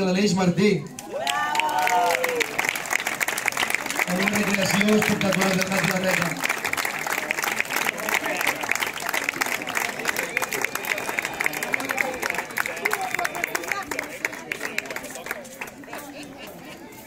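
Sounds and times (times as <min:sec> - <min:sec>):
crowd voices: 0:00.0 - 0:17.0
crowd applauding: 0:00.9 - 0:16.6.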